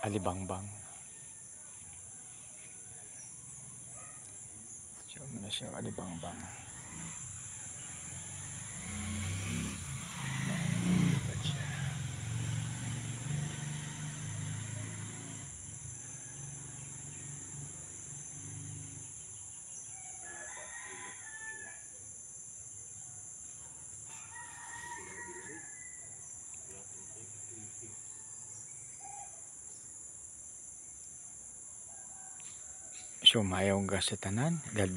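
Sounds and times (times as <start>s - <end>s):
roosters crowing: 0.0s - 29.8s, 31.8s - 34.9s
high insect trilling: 2.5s - 34.9s.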